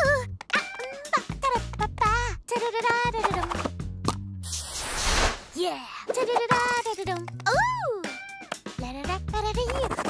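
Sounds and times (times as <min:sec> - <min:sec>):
cartoon character singing: 0:00.0 - 0:03.6, 0:05.7 - 0:10.0
bouncy cartoon music: 0:00.0 - 0:04.4, 0:06.0 - 0:10.0
burst of hissing noise: 0:04.4 - 0:05.5.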